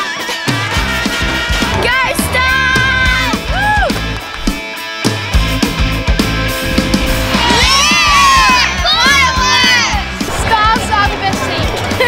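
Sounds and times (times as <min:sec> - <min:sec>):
rock music with steady beat: 0:00.0 - 0:10.3
children cheering and shouting: 0:00.1 - 0:04.3, 0:07.2 - 0:10.8.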